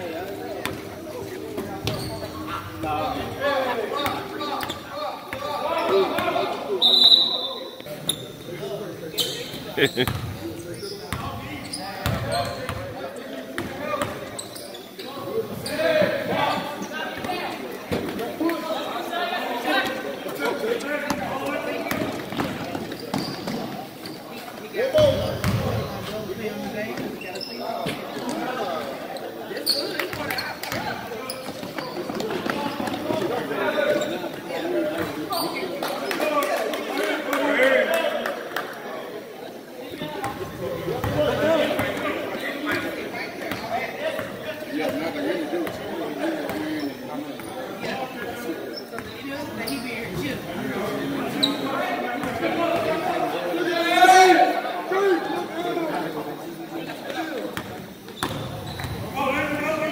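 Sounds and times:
echoing voices and shouts: 0.0s - 14.4s, 24.6s - 57.5s.

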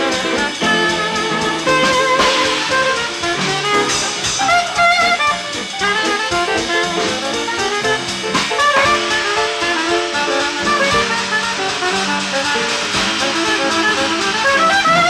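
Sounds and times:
drums: 0.0s - 15.0s
piano: 0.0s - 15.0s
soprano saxophone melody: 0.0s - 15.0s.

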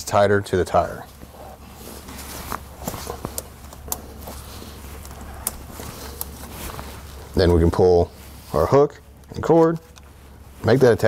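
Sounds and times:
faint handling noise: 0.7s - 11.0s.

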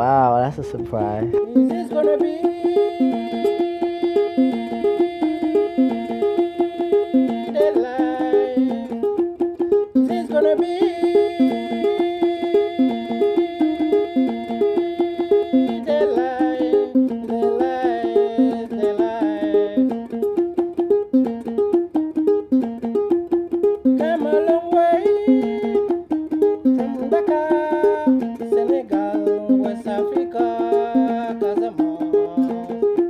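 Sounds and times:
plucked lute figure: 0.0s - 33.0s.

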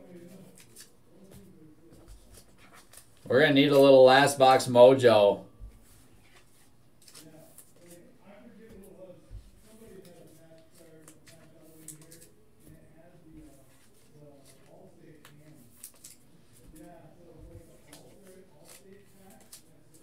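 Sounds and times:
cards and packaging rustling: 0.2s - 5.2s, 5.8s - 8.1s, 9.6s - 20.0s.

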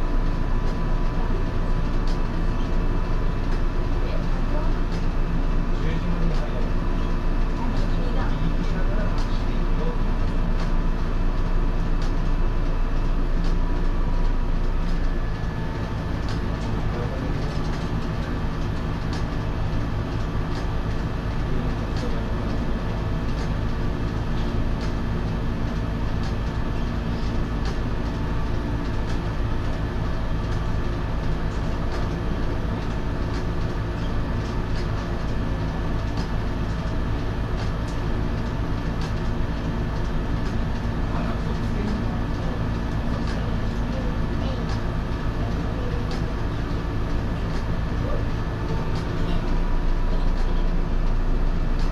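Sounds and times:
railcar equipment hum: 0.0s - 51.9s.

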